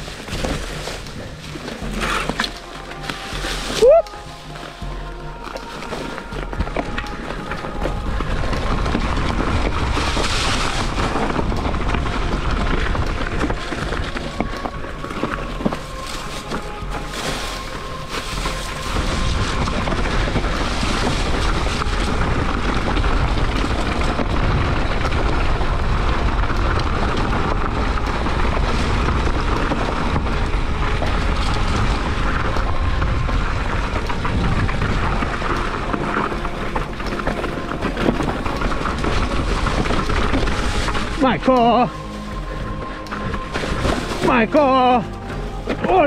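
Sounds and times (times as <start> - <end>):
bike knocking and rattling: 0.0 - 46.0
bike tyre and suspension noise: 0.0 - 46.0
wind buffeting microphone: 6.2 - 45.8.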